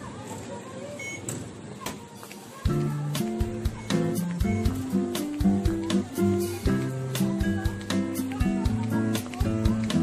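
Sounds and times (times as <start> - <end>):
murmur of station crowd: 0.0 - 10.0
card reader beep: 1.0 - 1.4.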